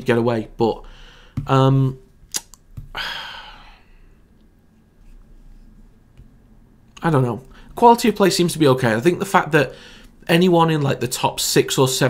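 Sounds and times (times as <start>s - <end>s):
sharp click: 2.3s - 2.6s
man sighing: 2.9s - 4.0s.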